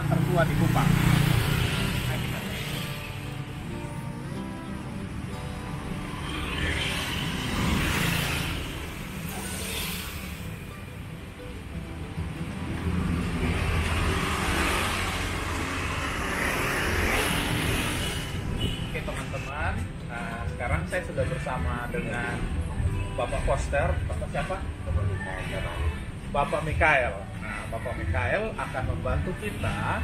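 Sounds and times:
vehicles driving past: 0.0 - 30.0.

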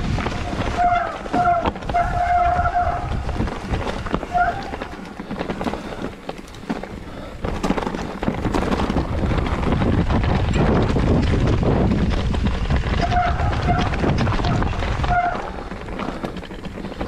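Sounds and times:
wind on microphone: 0.0 - 5.6, 7.5 - 16.2
brakes squealing: 0.0 - 9.6, 10.5 - 17.0
bike rattling: 0.0 - 17.0
tyres crunching over stones: 0.0 - 17.0.

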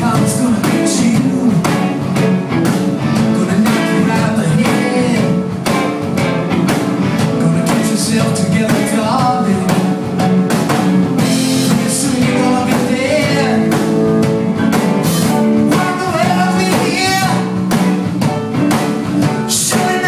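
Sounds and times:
electric guitars: 0.0 - 20.0
steady drum beat: 0.0 - 20.0.

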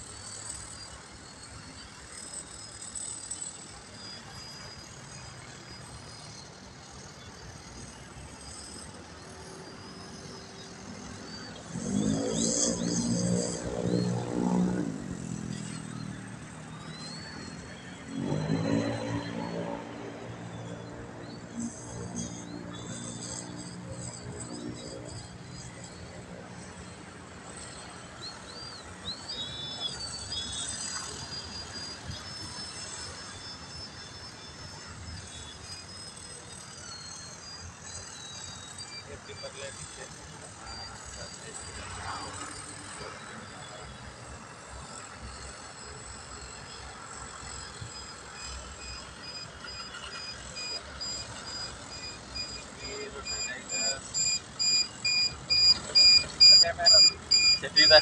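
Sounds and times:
model plane motor whine: 0.0 - 58.0
steady background noise: 0.0 - 58.0
repeating beep: 8.4 - 58.0.

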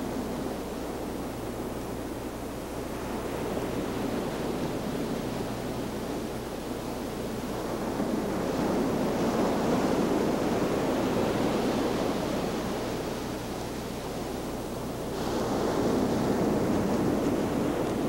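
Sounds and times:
steady low hum: 0.0 - 18.0
waves breaking: 2.8 - 18.0.

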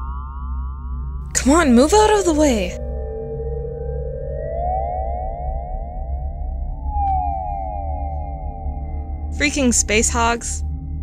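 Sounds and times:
low steady hum: 0.0 - 3.4, 7.8 - 11.0
siren-like synth tone rising: 2.8 - 11.0.

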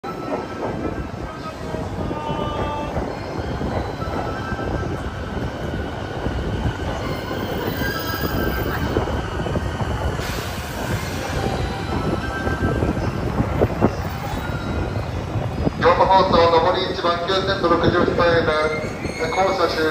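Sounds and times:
wheel squeal: 18.6 - 19.9.

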